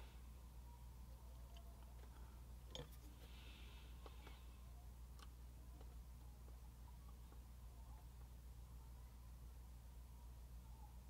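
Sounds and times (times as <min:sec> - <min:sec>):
steady low hum: 0:00.0 - 0:11.0
light clicks of plastic parts: 0:05.1 - 0:08.4.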